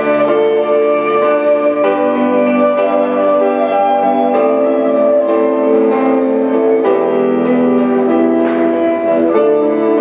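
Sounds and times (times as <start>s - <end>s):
electric violin melody: 0.0s - 10.0s.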